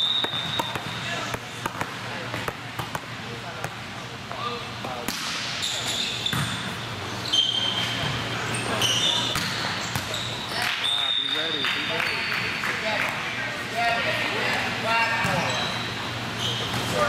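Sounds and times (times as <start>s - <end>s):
sneakers squeaking on floor: 0.0s - 1.3s, 5.6s - 12.5s, 15.0s - 17.0s.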